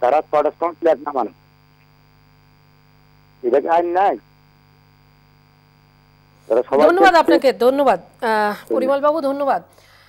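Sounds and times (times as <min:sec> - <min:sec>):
telephone line electrical hum: 0:00.0 - 0:10.0
caller speaking: 0:03.4 - 0:04.2, 0:06.5 - 0:09.7.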